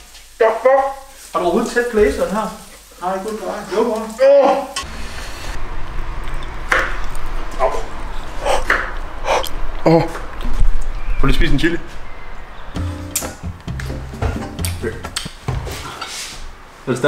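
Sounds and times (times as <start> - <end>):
man making wordless sounds: 14.3 - 15.2.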